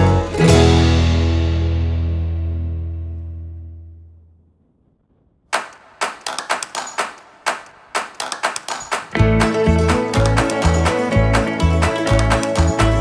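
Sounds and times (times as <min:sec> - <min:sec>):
background music: 0:00.0 - 0:02.8, 0:06.7 - 0:13.0.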